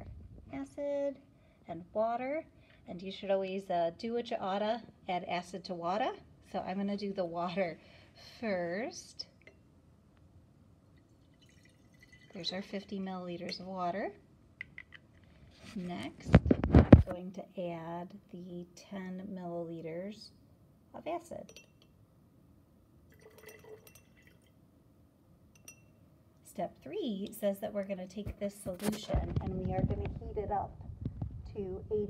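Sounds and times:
light glass clink: 0:09.4 - 0:09.7, 0:21.4 - 0:22.0, 0:23.2 - 0:24.5, 0:25.5 - 0:26.0
water trickling into glass flask: 0:11.0 - 0:12.7, 0:23.1 - 0:24.6.

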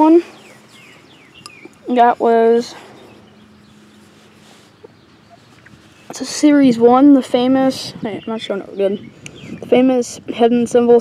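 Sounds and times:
outdoor background hiss: 0:00.0 - 0:11.0
soft ticks: 0:01.4 - 0:01.8.

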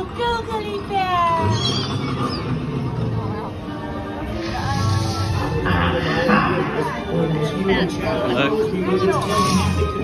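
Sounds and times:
ride vehicle rumbling on track: 0:00.0 - 0:06.9.

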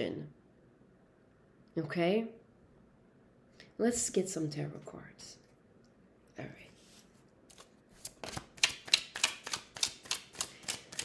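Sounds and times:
cards being shuffled: 0:06.8 - 0:11.0.

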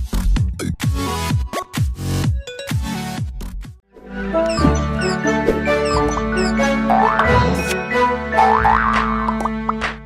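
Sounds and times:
bouncy jingle music: 0:04.1 - 0:08.8.

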